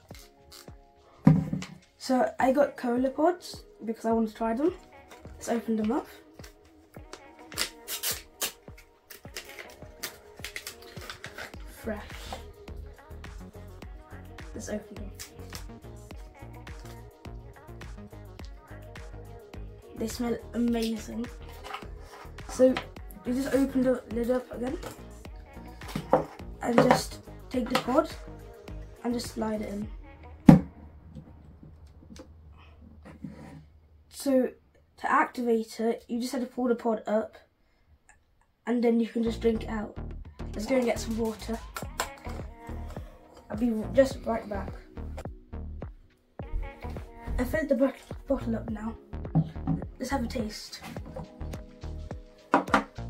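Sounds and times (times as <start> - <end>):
background music with beat: 0.0 - 2.0, 3.4 - 30.8, 39.6 - 53.0
plastic pouch crinkling: 7.5 - 11.7.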